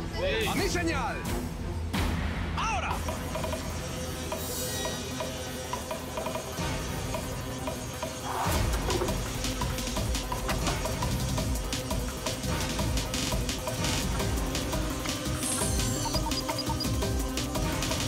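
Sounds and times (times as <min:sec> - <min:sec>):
background music with sustained tones: 0:00.0 - 0:18.0.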